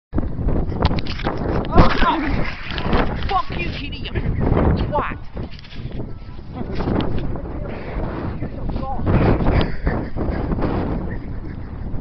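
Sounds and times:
wind buffeting microphone: 0.1 - 12.0
people's voices: 1.6 - 11.6.

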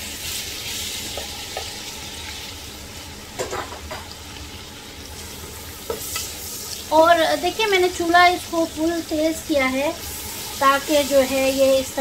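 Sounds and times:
tomatoes sizzling in oil: 0.0 - 12.0
spatula tapping pot: 1.1 - 1.8.

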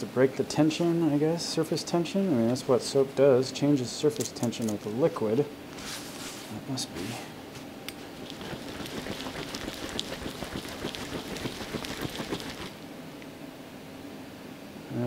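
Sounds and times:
paper towel rustling: 5.8 - 12.8
water sloshing in a jar: 8.0 - 12.8.

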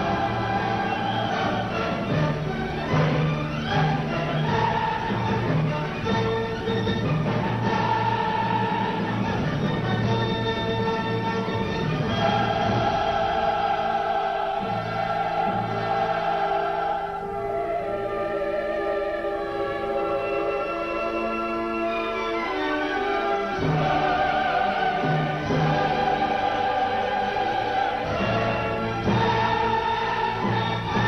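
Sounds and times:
choir and orchestra chords: 0.0 - 31.0
soprano singing: 12.0 - 31.0.

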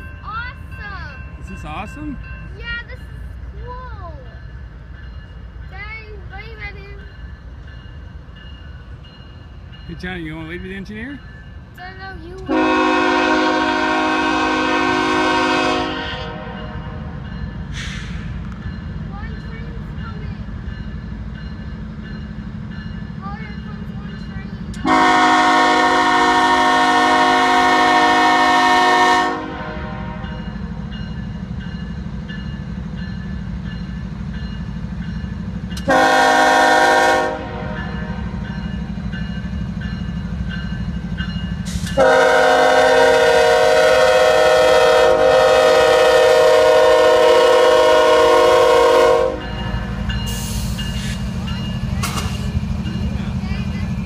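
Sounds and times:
low rumble of passing train: 0.0 - 54.0
locomotive air horn blasts: 12.5 - 17.2, 24.8 - 30.4, 35.8 - 38.2, 41.9 - 49.6.

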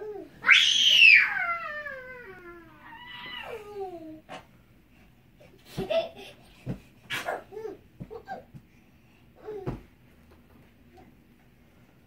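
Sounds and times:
child squealing: 0.4 - 2.0.

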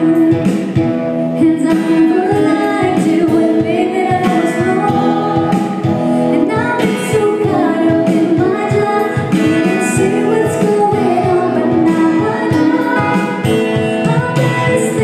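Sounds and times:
acoustic guitar: 0.0 - 15.0
keyboard: 0.0 - 15.0
woman singing: 0.0 - 15.0.

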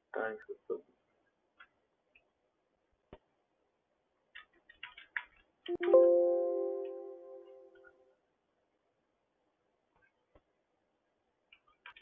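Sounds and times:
keyboard keystrokes: 4.3 - 6.1.

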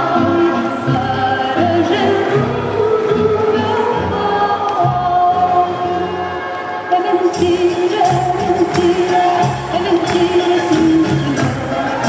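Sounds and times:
group of voices singing: 0.0 - 6.0, 6.9 - 12.0.

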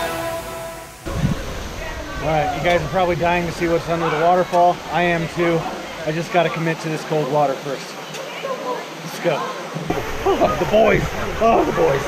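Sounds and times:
waterfall rushing into pool: 0.0 - 12.0.

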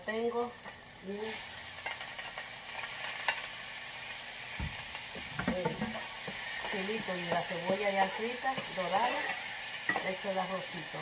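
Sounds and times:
rice sizzling in hot oil: 0.0 - 11.0
utensil clicking on pan: 5.1 - 10.2.

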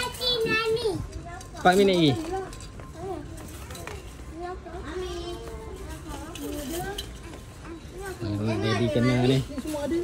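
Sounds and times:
children's and adults' voices chattering: 0.0 - 10.0.

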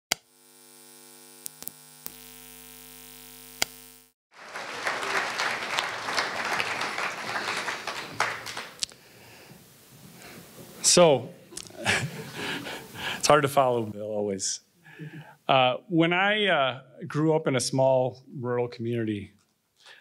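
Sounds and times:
audience applause: 4.3 - 8.9.

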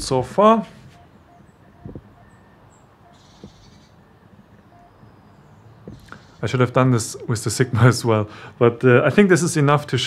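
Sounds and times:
soft footsteps: 1.8 - 2.1, 5.8 - 6.2.

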